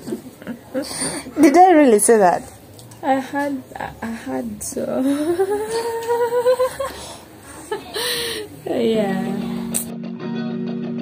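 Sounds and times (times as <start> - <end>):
woman humming rising in pitch: 5.0 - 6.9.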